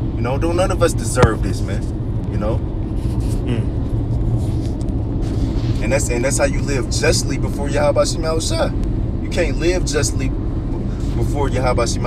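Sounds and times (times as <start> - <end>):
steady low rumble: 0.0 - 12.0
man humming short mm: 3.4 - 3.8.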